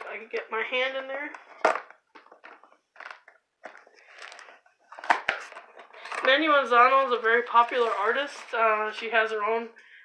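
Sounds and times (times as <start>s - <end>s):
cardboard rustling and scraping: 2.4s - 8.7s.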